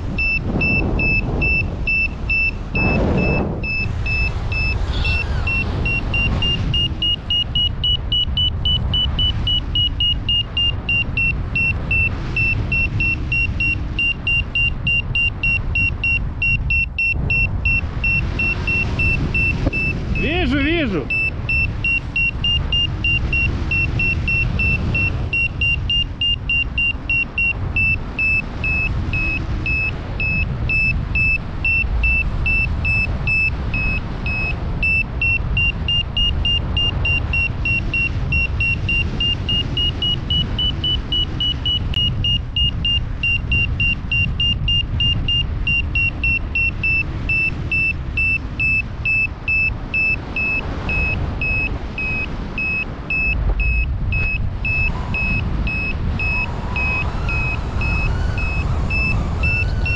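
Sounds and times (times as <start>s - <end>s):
rapid high electronic beeps: 0.0s - 59.9s
wind rumbling on microphone: 0.0s - 59.9s.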